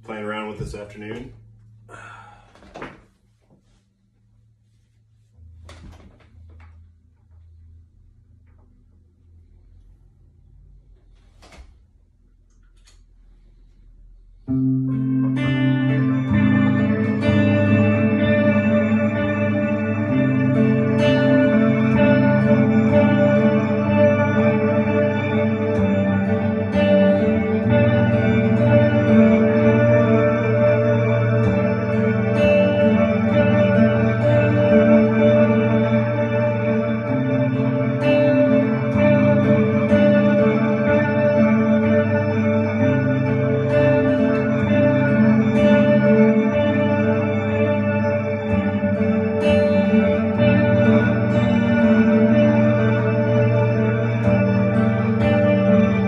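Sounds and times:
reverberant electric guitar chords: 5.4 - 56.0
clicks: 11.0 - 13.3.

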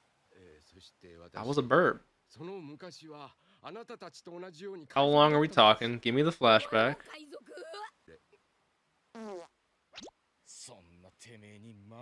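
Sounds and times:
man speaking: 0.5 - 3.8, 4.4 - 7.1
cartoon fart sound effect: 9.2 - 10.2.

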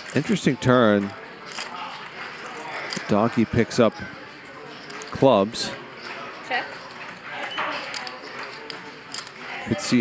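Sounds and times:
card-room background noise: 0.0 - 10.0.

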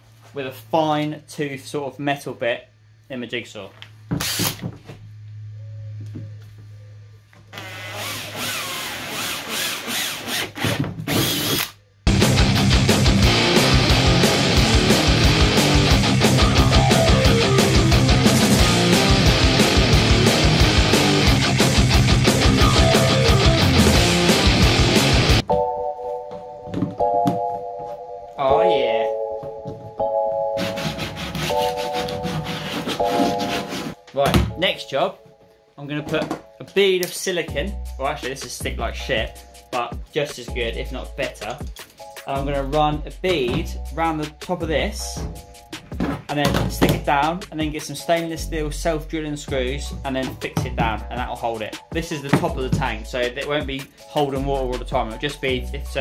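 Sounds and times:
cordless drill whining: 7.5 - 11.7
jigsaw cutting plastic: 7.6 - 11.7
heavy rock music: 12.1 - 25.6
background music with held chords: 12.1 - 56.0.

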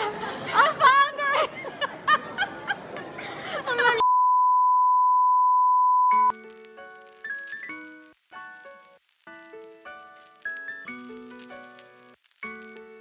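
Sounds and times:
steady electronic beep: 4.0 - 6.3
background music with keyboard: 6.3 - 13.0.

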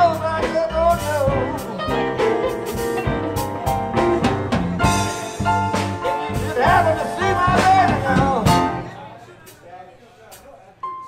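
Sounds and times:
electric guitars: 0.0 - 8.9
drum kit: 0.0 - 9.7.

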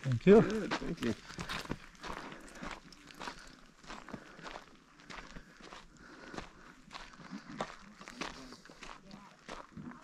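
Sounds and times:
footsteps on dirt path: 0.0 - 10.0.

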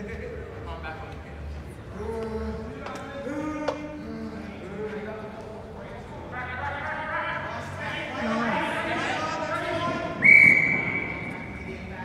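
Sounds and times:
referee's whistle blast: 10.2 - 11.4.

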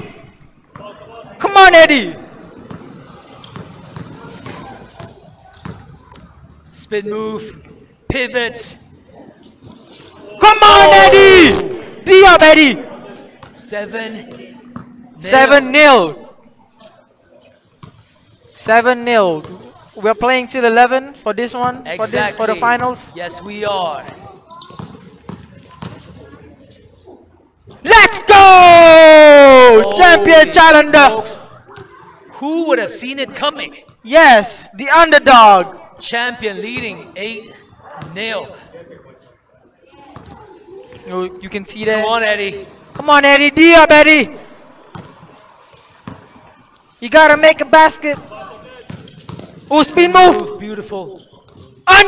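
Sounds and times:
basketball bouncing on hard court: 48.9 - 49.6.

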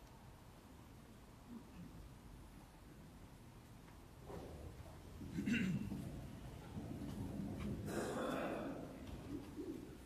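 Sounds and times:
rustling of people standing up: 3.9 - 10.0.

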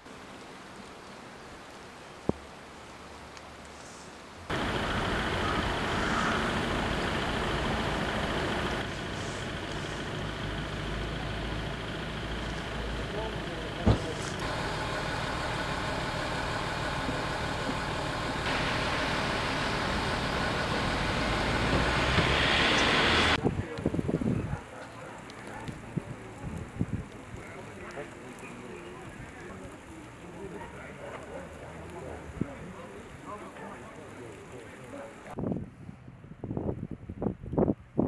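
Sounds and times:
street and vehicle noise: 0.0 - 38.0
faint voices: 23.4 - 35.4.

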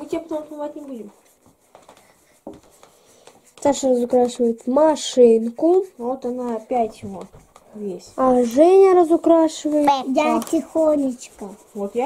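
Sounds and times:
felt-tip markers scratching: 0.0 - 12.0.

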